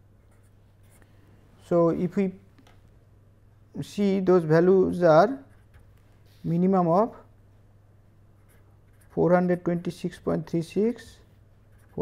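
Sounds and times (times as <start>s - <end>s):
man talking: 1.6s - 2.5s, 3.8s - 5.5s, 6.4s - 7.3s, 9.2s - 11.3s
pen scratching on paper: 8.4s - 9.3s, 11.7s - 12.0s.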